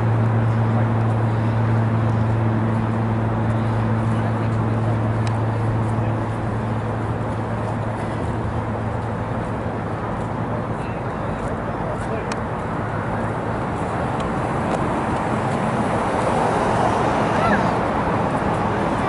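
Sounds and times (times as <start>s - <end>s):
murmur of voices: 0.0s - 19.0s
steady traffic noise: 0.0s - 19.0s.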